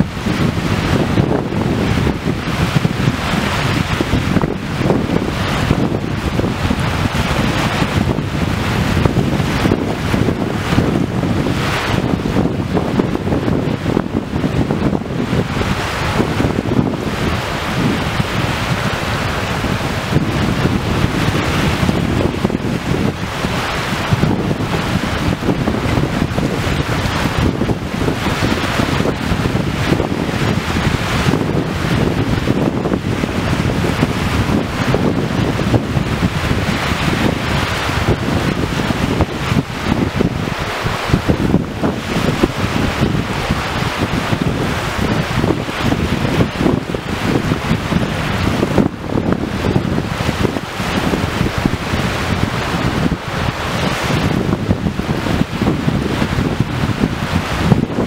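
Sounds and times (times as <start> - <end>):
small waves washing on shore: 0.0 - 58.0
wind buffeting microphone: 0.0 - 58.0.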